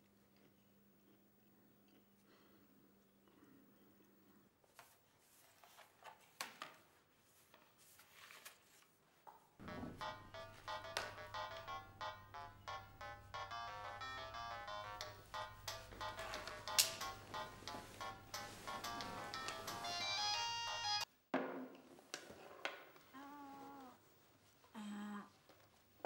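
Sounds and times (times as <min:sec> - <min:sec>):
bright melodic music: 0:09.6 - 0:21.1
broom sweeping a tiled floor: 0:16.2 - 0:19.8.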